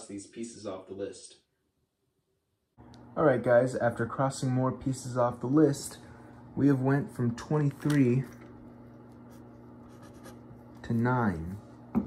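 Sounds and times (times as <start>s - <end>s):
pencil scratching on paper: 8.7s - 11.2s.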